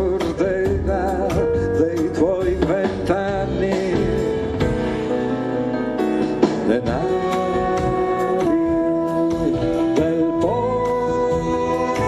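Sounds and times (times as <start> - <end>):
grand piano: 0.0 - 12.0
sliding melody line: 0.0 - 12.0.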